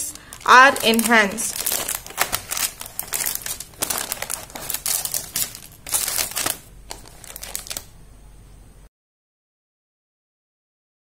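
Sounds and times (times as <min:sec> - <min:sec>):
plastic bags crinkling: 0:00.0 - 0:07.9.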